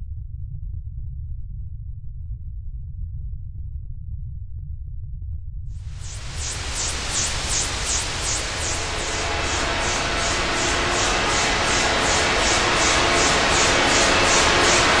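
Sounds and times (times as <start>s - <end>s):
deep rumble: 0.0s - 15.0s
rushing noise: 5.8s - 15.0s.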